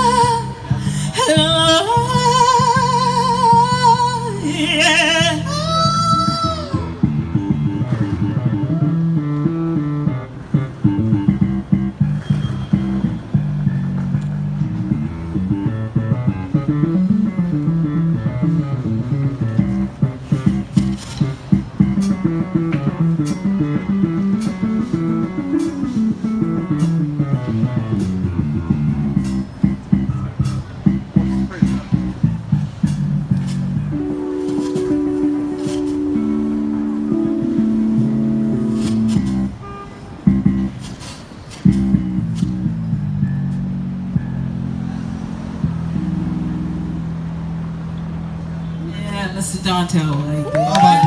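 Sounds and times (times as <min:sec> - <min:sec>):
bass line: 0:00.0 - 0:51.0
band playing drums and keyboards: 0:15.6 - 0:39.6, 0:40.2 - 0:43.6.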